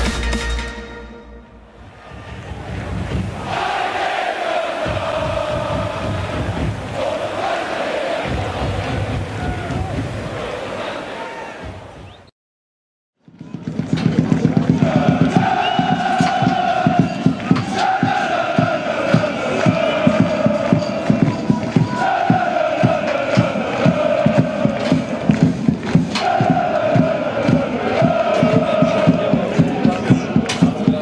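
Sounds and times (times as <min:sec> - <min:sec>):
crowd chanting to a beat: 0:01.9 - 0:12.0, 0:13.6 - 0:31.0.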